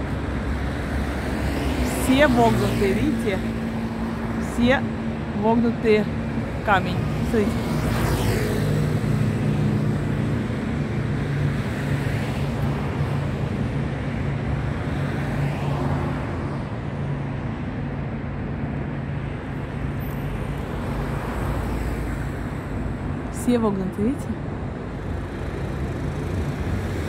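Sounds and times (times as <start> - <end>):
city traffic noise: 0.0 - 27.0.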